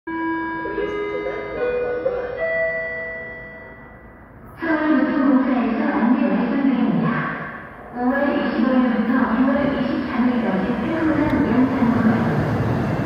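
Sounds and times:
electronic station chime: 0.1 - 4.4
public address announcement: 0.1 - 13.0.

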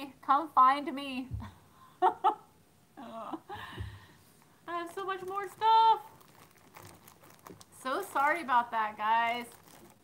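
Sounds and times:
woman speaking: 0.0 - 1.4, 4.7 - 6.2, 7.8 - 9.6
faint rustling: 3.9 - 10.0.

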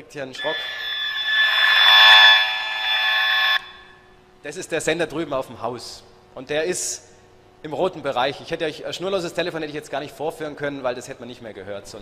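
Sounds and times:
harsh steady detector buzz: 0.4 - 4.0.

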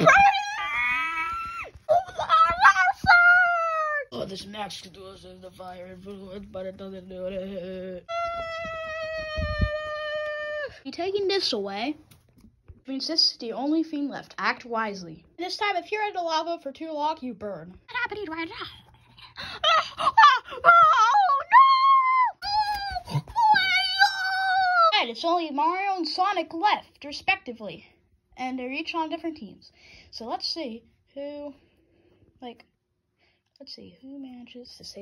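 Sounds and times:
high voice wailing: 0.0 - 4.1, 7.9 - 10.8
high-pitched vocal cry: 0.0 - 4.1, 8.0 - 10.8, 19.3 - 24.9.

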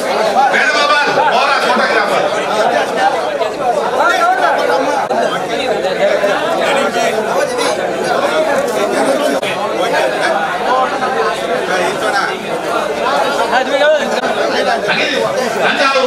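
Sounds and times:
crowd of men talking: 0.0 - 16.0.

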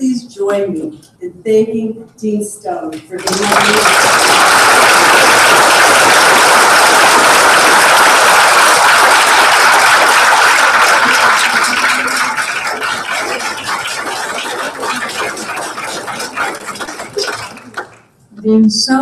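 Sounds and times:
audience applauding: 3.2 - 18.1.

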